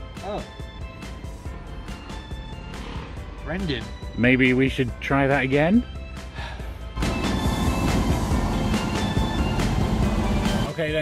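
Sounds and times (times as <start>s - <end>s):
faint background music: 0.0s - 11.0s
train wheels rumbling on rails: 7.0s - 10.7s.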